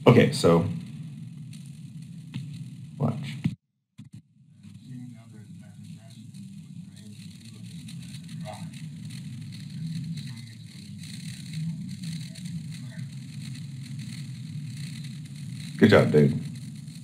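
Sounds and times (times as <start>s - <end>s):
hissy film soundtrack rumble: 0.0s - 17.0s
man's voice: 0.1s - 0.8s, 3.0s - 3.4s, 15.8s - 16.5s.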